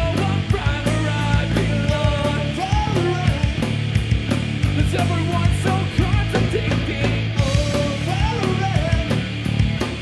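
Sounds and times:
drum kit: 0:00.0 - 0:10.0
electric guitars: 0:00.0 - 0:10.0.

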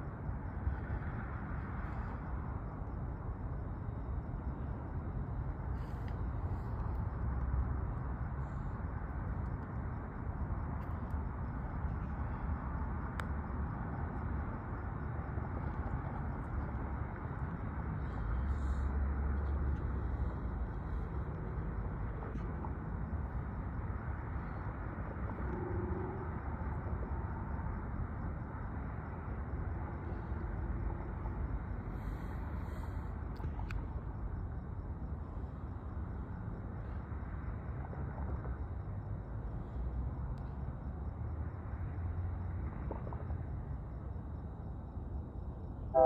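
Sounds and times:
distant diesel locomotive rumble: 0:00.0 - 0:46.0
diesel locomotives rumbling: 0:45.6 - 0:46.0.

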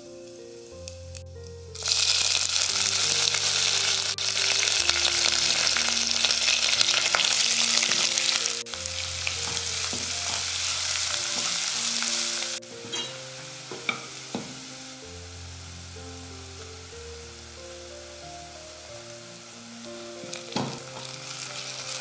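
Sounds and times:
hot oil sizzling: 0:00.0 - 0:22.0.

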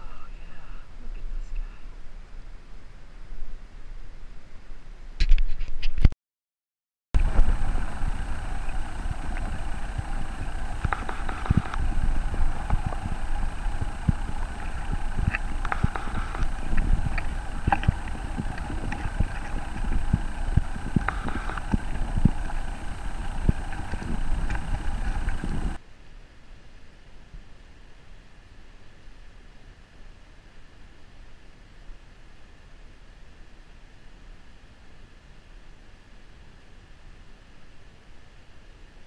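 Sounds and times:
muffled underwater stream rumble: 0:07.2 - 0:25.8.

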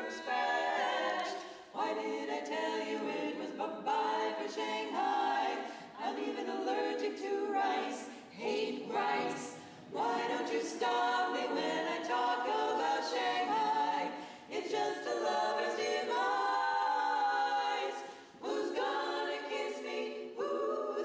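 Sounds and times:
women singing in harmony: 0:00.0 - 0:21.0.

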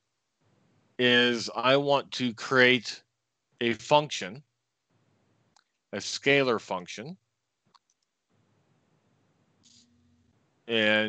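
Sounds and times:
faint computer mouse clicks: 0:07.7 - 0:08.1.

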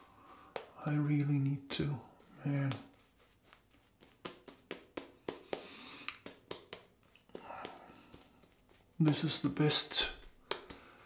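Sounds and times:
shaving brush swishing lather: 0:00.0 - 0:05.5, 0:07.0 - 0:10.4.

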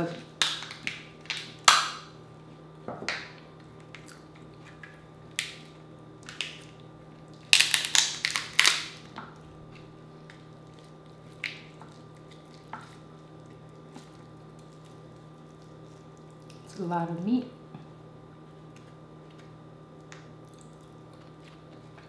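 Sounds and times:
shell cracking and crunching: 0:04.8 - 0:12.7.

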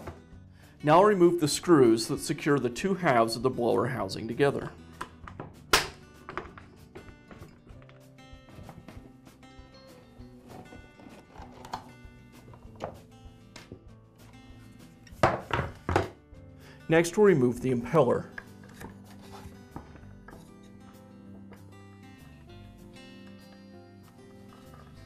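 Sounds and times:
background music: 0:00.0 - 0:25.0
plastic knocks: 0:15.2 - 0:16.2.

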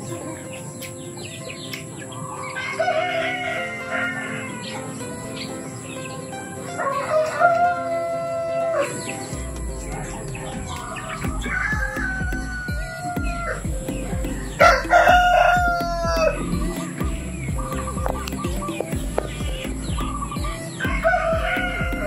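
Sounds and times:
rooster crowing: 0:02.3 - 0:05.0, 0:06.8 - 0:09.4, 0:10.0 - 0:16.9, 0:20.4 - 0:22.0.

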